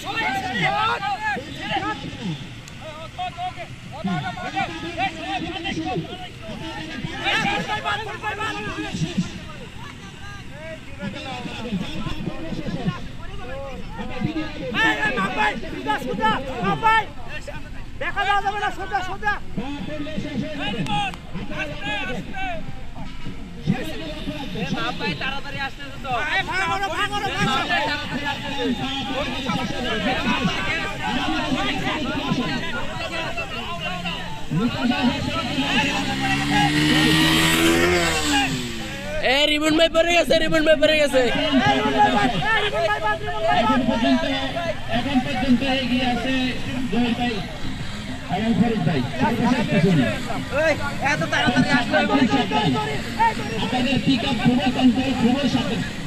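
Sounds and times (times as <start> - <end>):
people shouting: 0.0 - 17.4, 26.0 - 39.2, 41.1 - 56.0
motorcycle engines at low revs: 0.0 - 56.0.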